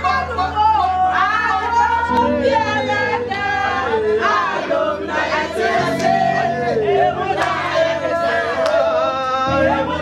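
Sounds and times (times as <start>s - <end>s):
group singing and shouting: 0.0s - 10.0s.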